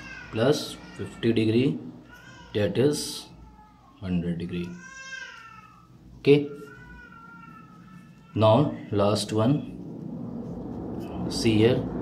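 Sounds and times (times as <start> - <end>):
voice: 8.4 - 9.8, 11.0 - 12.0.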